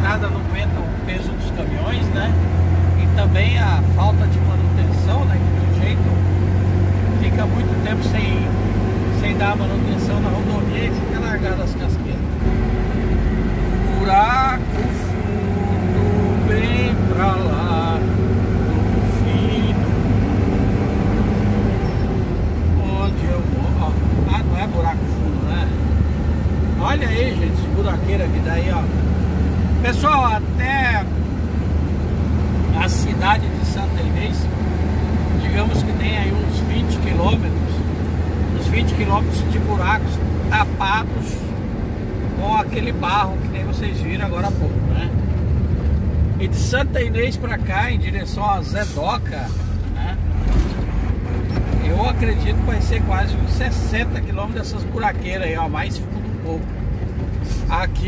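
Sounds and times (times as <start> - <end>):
road and tyre noise: 0.0 - 58.0
truck engine droning: 0.0 - 58.0.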